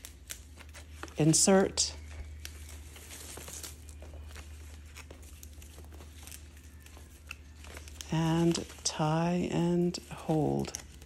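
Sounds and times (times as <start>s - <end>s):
rustling and crinkling leaves: 0.0s - 11.0s
steady low hum: 0.0s - 11.0s.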